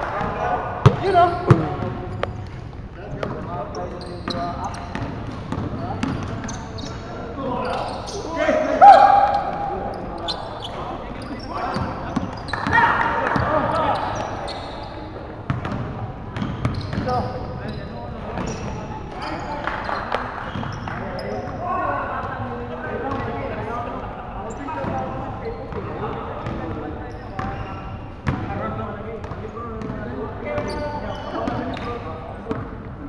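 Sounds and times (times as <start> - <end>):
basketball bouncing on wooden floor: 0.8 - 2.4
players shouting: 8.2 - 10.2.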